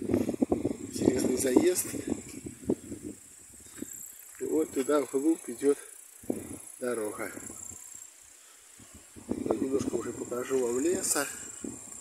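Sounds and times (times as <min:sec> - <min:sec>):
faint high hiss: 0:00.0 - 0:12.0.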